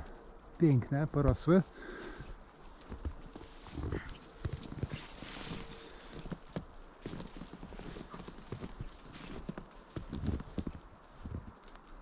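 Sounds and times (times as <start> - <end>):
footsteps in snow: 1.3 - 12.0.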